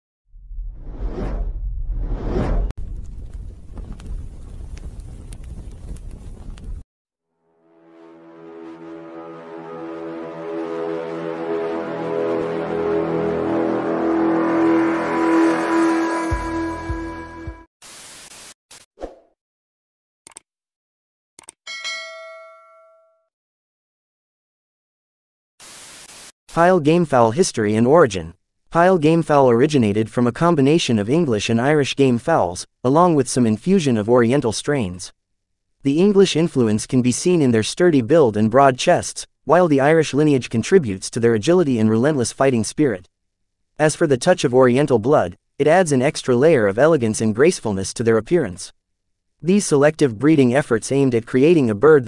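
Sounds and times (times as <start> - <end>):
deep rumble: 0.3 - 6.8
whoosh sound effect: 0.6 - 2.7
notification bell chime: 21.7 - 23.2.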